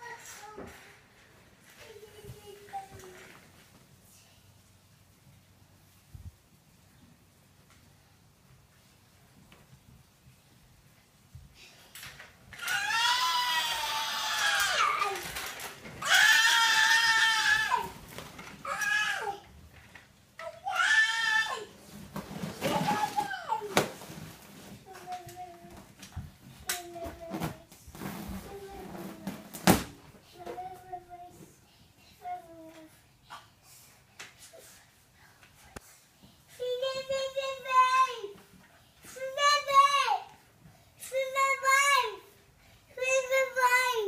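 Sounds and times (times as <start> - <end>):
child shrieking: 16.0 - 17.9.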